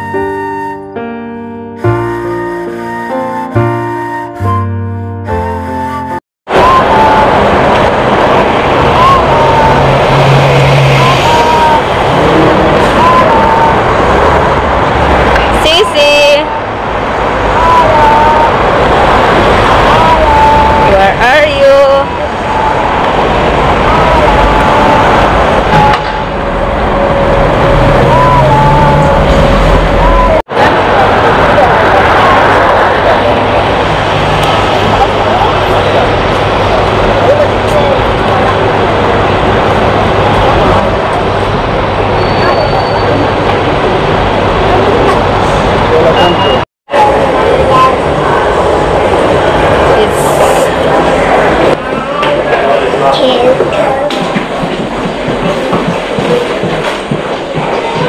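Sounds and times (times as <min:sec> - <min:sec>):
car traffic on busy road: 0:06.5 - 0:58.0
people's voices: 0:06.5 - 0:58.0.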